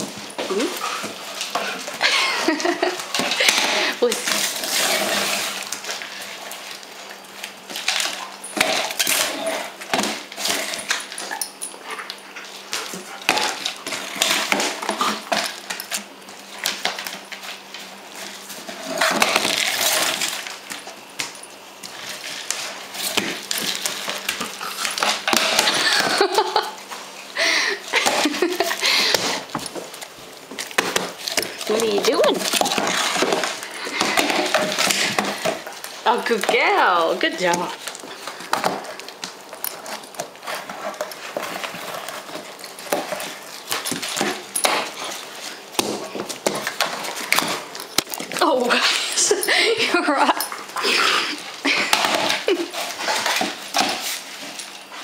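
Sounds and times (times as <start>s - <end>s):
dog playing with cardboard tube: 0.0s - 55.0s.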